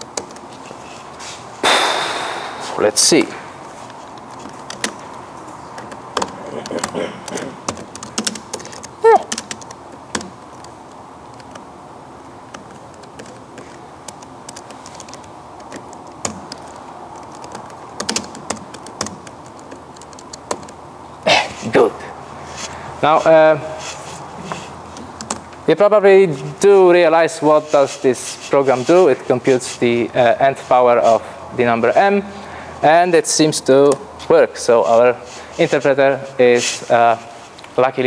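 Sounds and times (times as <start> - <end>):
burst of noise with high tone: 1.6 - 3.1
typing on computer keyboard: 5.8 - 11.6, 12.5 - 20.8
keyboard keystroke: 14.0 - 20.8.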